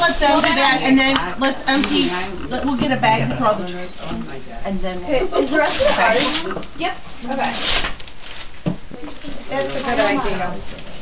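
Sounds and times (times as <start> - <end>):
noisy rustle: 0.0 - 3.3, 5.3 - 11.0
people talking: 0.0 - 7.6, 9.0 - 10.8.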